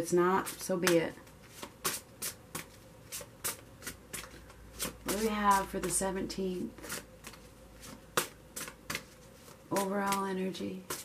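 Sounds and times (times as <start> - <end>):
cards being shuffled: 6.8 - 10.3.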